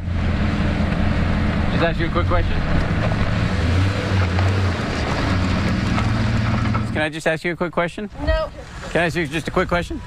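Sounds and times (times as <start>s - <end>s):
truck engine running: 0.0s - 7.3s.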